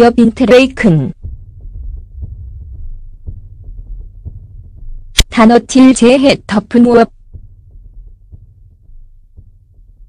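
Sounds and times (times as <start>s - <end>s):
low throbbing hum: 0.0s - 10.0s.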